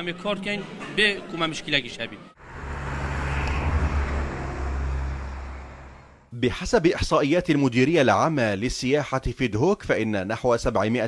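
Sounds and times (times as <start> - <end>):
cars driving past: 0.6 - 6.3.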